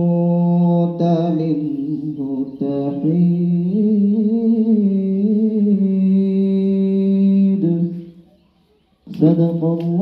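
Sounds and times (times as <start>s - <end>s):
man chanting through loudspeaker: 9.1s - 10.0s.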